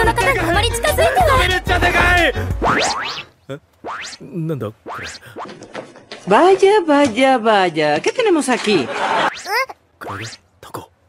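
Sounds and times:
music: 0:00.0 - 0:02.8
voice: 0:04.2 - 0:05.3, 0:06.3 - 0:10.9.

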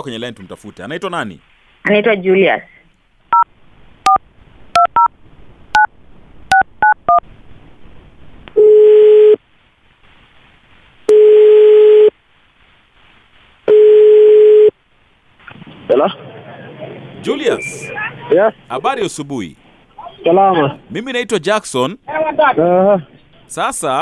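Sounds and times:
telephone ringback tone: 0:08.6 - 0:09.4, 0:11.1 - 0:12.1, 0:13.7 - 0:14.7.

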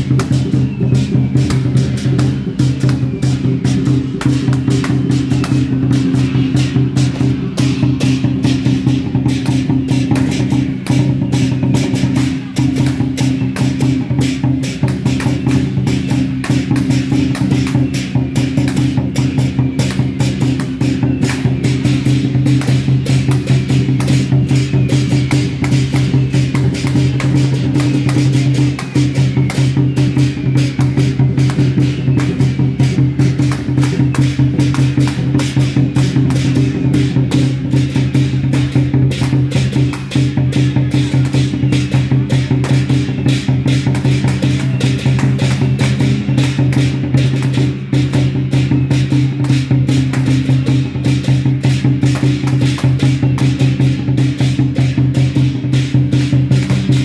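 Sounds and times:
fast percussion beat: 0:00.0 - 0:57.0.

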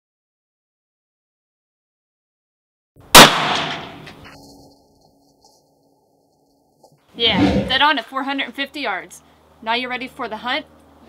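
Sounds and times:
rifle shot echoing: 0:03.1 - 0:04.2.

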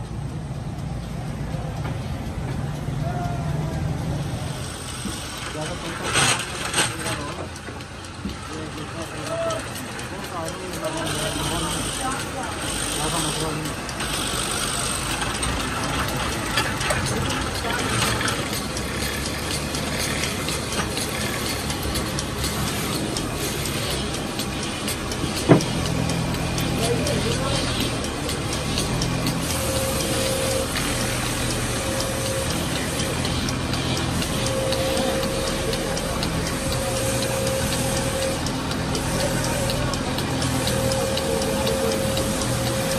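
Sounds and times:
wood lathe running: 0:04.4 - 0:42.9
sanding spinning wood: 0:09.7 - 0:42.9.

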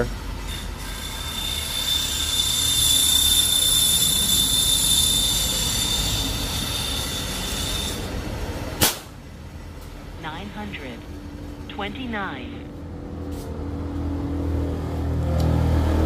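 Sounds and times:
high-pressure air hissing: 0:00.8 - 0:08.2
air rifle shot: 0:08.8 - 0:09.2.

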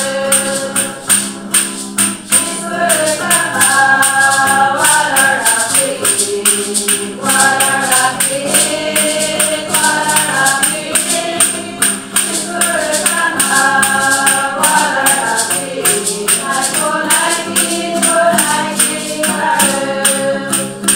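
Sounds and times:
acoustic guitar: 0:00.0 - 0:20.9
group singing a hymn: 0:00.0 - 0:20.9
hand percussion beat: 0:00.0 - 0:20.9.

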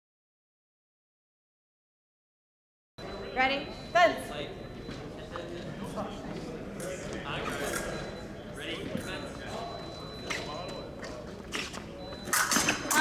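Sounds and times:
murmur of voices: 0:03.0 - 0:13.0.

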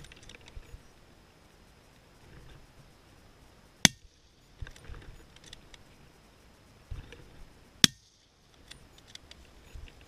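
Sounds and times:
faint clicks: 0:08.5 - 0:10.0.

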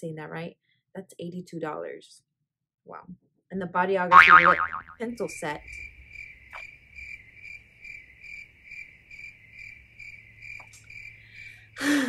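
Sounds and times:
cricket chirping: 0:05.6 - 0:11.8.

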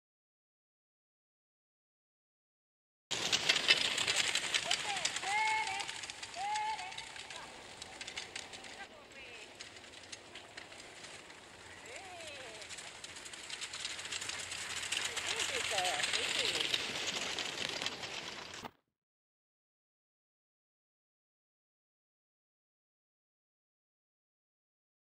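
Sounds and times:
crackling crunching with small clicks: 0:03.1 - 0:18.7.

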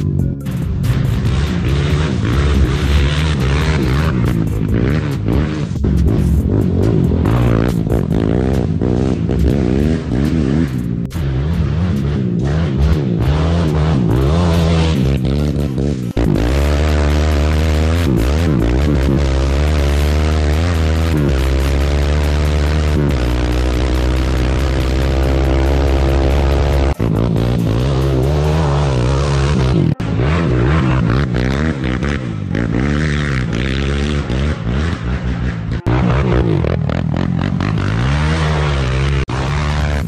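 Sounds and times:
quad engine revving: 0:00.0 - 0:40.0.

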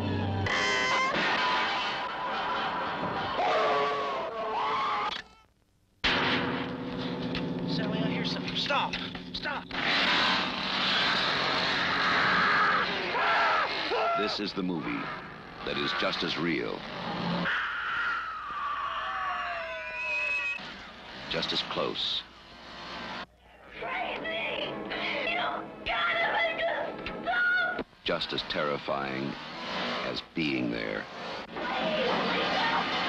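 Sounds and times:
wavering high scream: 0:02.7 - 0:05.4, 0:11.7 - 0:14.3, 0:17.4 - 0:20.7
shrill cry: 0:03.2 - 0:05.5, 0:11.8 - 0:15.2, 0:17.5 - 0:20.6
harsh motor drone: 0:06.4 - 0:13.9.

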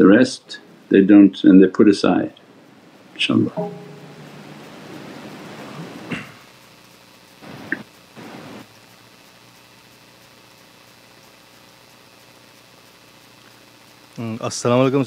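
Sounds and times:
faint steady hiss: 0:00.0 - 0:15.0.

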